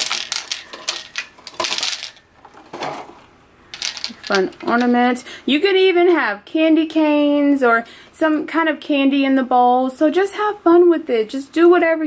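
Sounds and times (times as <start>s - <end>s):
ball ornaments clattering in bowl: 0.0s - 5.1s.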